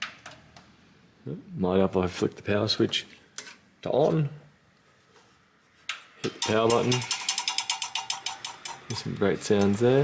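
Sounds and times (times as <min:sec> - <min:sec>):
faint fan whine: 0:00.2 - 0:10.0
fan blades clattering: 0:06.2 - 0:10.0.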